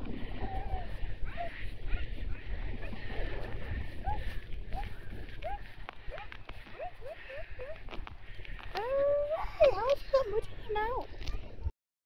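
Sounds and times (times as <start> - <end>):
wind rumble on microphone: 0.0 - 11.7.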